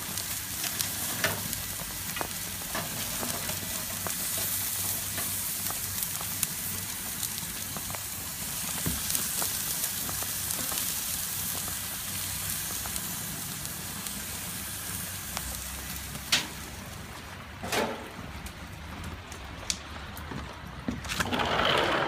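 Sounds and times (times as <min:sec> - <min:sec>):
vegetables sizzling on grill: 0:00.0 - 0:19.2.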